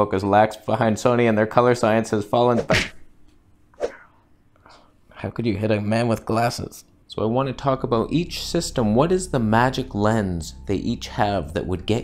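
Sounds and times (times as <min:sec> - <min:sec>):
faint breath: 0:03.8 - 0:05.0.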